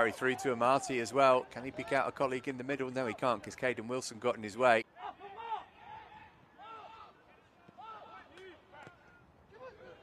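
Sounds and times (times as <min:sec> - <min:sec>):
distant players shouting: 0:04.9 - 0:10.0.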